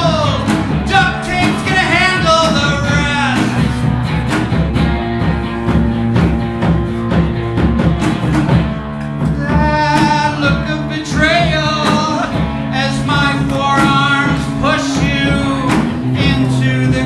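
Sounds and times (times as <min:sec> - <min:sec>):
man singing: 0:00.0 - 0:03.8, 0:09.3 - 0:17.0
live rock music: 0:00.0 - 0:17.0.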